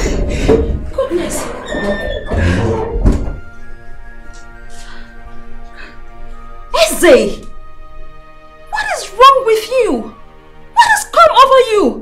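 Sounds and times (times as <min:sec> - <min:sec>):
soft music with held chords: 0:02.4 - 0:12.0.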